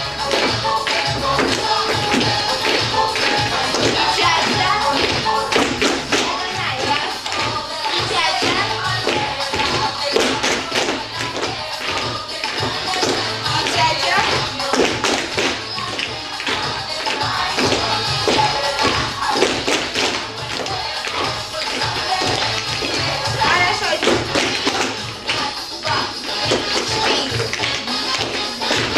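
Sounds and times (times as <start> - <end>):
dance music over loudspeakers: 0.0 - 28.9
shoes tapping on hard floor: 0.3 - 28.9.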